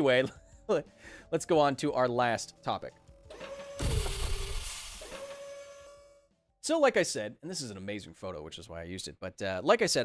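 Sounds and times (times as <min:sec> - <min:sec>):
mechanical whirring hum: 0:03.2 - 0:06.3.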